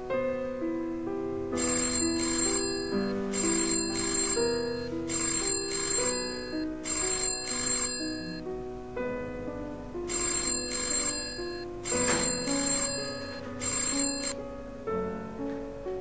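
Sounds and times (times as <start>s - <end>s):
soft keyboard music: 0.0s - 16.0s
telephone ringing: 1.5s - 8.5s, 10.1s - 14.4s.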